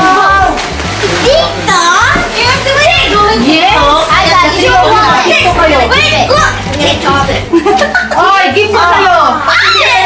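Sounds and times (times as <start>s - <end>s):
children and adults talking: 0.0s - 10.0s
music playing: 0.0s - 10.0s.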